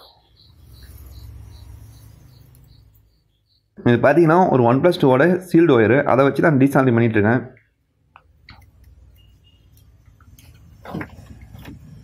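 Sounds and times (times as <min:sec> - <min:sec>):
cricket chirping: 0:00.0 - 0:05.4, 0:08.6 - 0:12.0.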